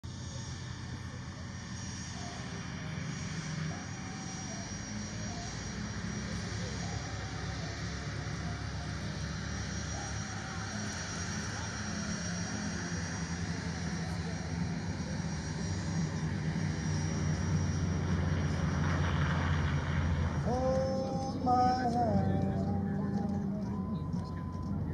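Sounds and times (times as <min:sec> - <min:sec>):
propeller aircraft engines droning: 0:00.0 - 0:24.9.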